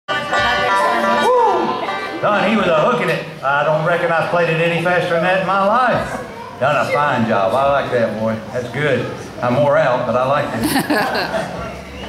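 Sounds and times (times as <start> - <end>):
person's voice: 10.6 - 11.3.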